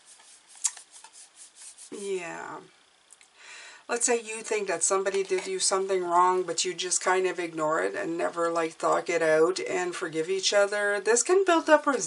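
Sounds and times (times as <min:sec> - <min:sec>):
fingers rubbing a card: 0:00.0 - 0:02.0.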